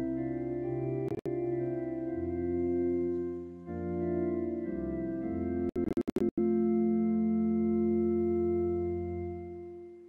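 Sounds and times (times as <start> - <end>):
organ sustained chord: 0.0 - 10.0.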